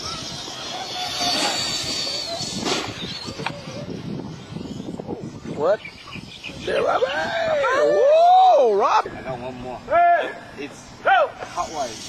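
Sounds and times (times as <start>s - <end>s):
rc truck motors whining: 0.0s - 7.7s, 11.4s - 12.0s.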